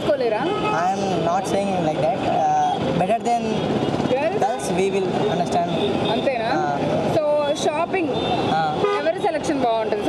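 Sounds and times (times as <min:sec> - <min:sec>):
street traffic: 0:00.0 - 0:10.0
voices talking: 0:00.0 - 0:10.0.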